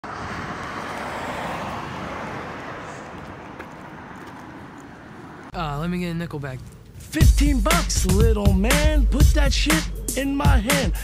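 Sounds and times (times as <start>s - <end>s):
road traffic hiss: 0.1s - 5.5s.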